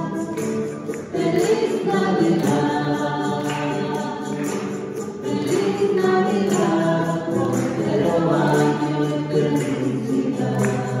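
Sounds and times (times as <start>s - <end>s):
group singing a hymn: 0.0s - 11.0s.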